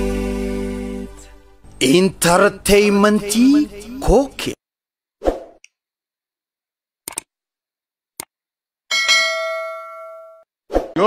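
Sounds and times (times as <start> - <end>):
bell-like ding: 8.9 - 10.4.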